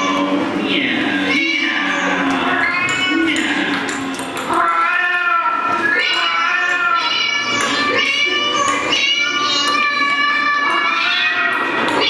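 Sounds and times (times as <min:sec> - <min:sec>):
meow-like wailing calls: 0:00.0 - 0:00.4, 0:01.2 - 0:12.0.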